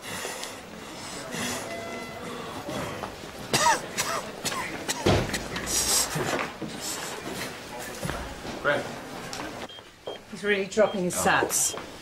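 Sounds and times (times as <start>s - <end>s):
person coughing: 3.5s - 5.5s.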